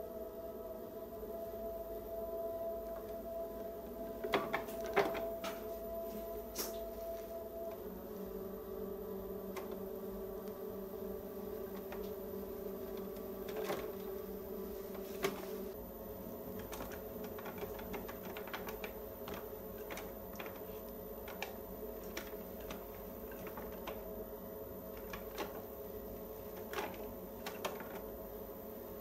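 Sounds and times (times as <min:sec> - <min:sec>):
potter's wheel humming: 0:00.0 - 0:29.0.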